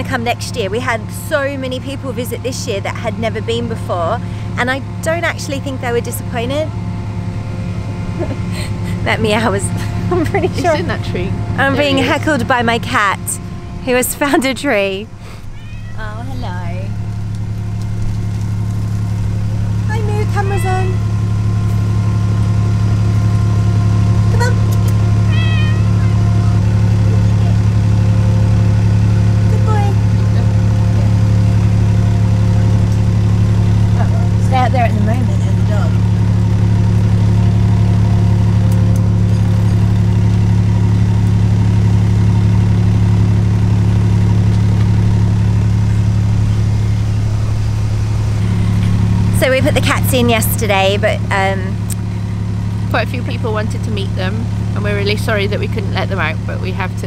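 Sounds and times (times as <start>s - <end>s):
boat diesel engines idling: 0.0s - 57.0s
cat meowing: 15.5s - 16.3s, 25.2s - 26.4s.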